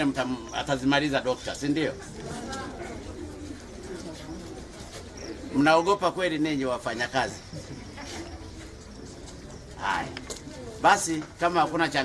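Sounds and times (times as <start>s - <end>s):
birds calling: 0.0s - 11.7s
faint voices of people: 0.0s - 12.0s.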